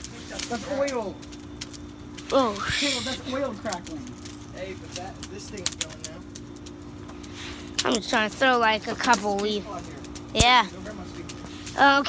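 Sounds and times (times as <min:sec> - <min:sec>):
campfire crackling and popping: 0:00.0 - 0:12.0.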